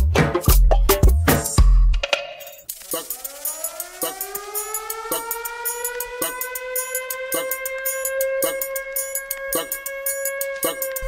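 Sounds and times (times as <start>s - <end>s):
dance beat with sharp hits: 0.0s - 2.2s, 2.9s - 11.0s
fast hi-hat ticks: 2.7s - 11.0s
rising siren tone: 3.0s - 11.0s.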